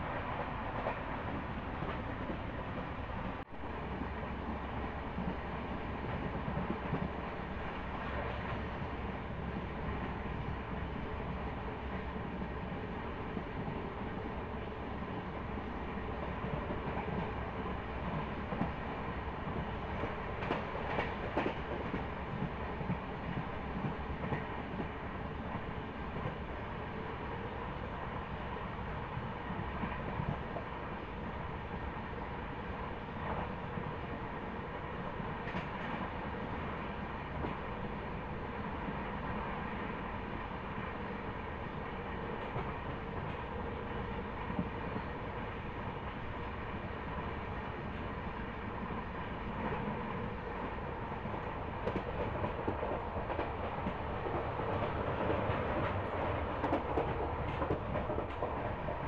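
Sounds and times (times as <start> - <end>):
train rumble and rushing air: 0.0 - 59.0.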